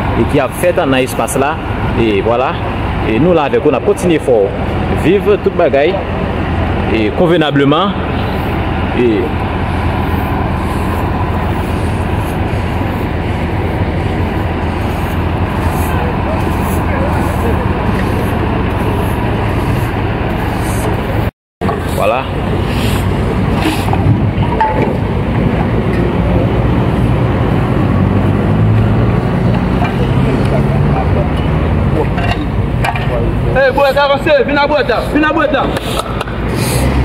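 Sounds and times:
background voices: 0.0s - 37.0s
vehicle engines running: 0.0s - 37.0s.

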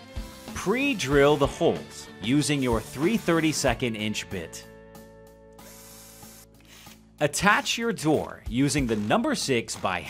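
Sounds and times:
soft background music: 0.0s - 10.0s
drill bit boring into wood: 0.1s - 1.3s, 5.6s - 6.5s.

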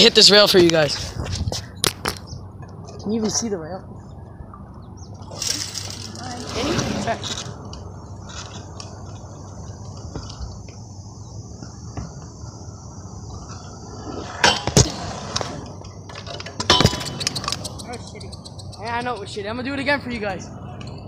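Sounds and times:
scooter landing clatter: 14.2s - 17.8s
scooter clacks: 14.4s - 19.8s.

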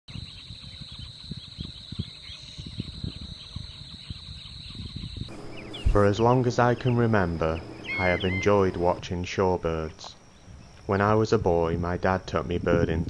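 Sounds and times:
faint shorebird chirps: 0.1s - 11.2s
high insect drone: 0.1s - 13.0s.

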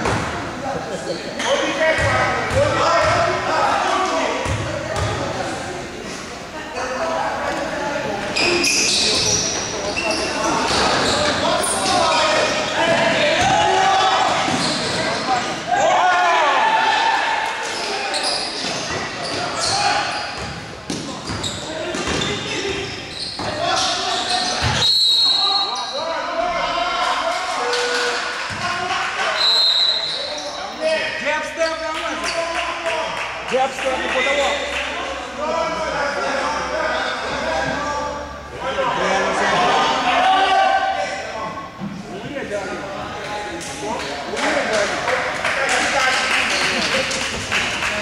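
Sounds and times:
indistinct shouting and chatter: 0.0s - 48.0s
short high squeaks: 8.4s - 12.0s
basketball bouncing: 20.4s - 22.3s.

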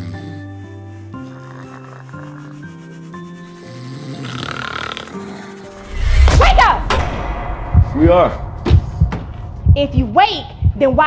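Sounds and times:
person snoring: 0.0s - 6.0s
background music: 0.0s - 11.0s.

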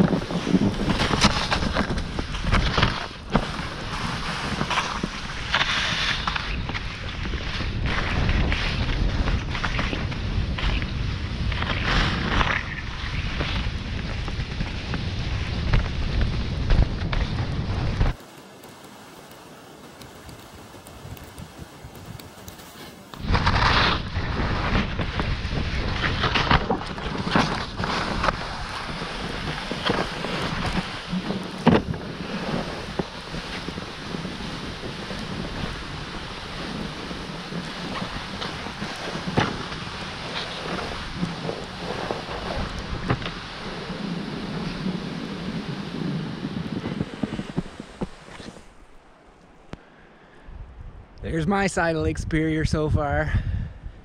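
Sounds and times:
sled skis hissing over snow: 0.0s - 49.0s
wind buffeting microphone: 0.0s - 54.0s.

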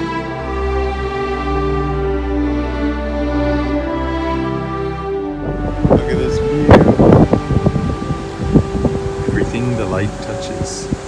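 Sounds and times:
background music: 0.0s - 11.0s
wind buffeting microphone: 5.2s - 11.0s.

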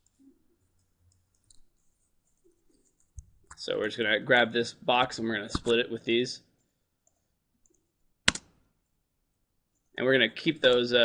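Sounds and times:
computer mouse clicks: 6.6s - 8.6s.

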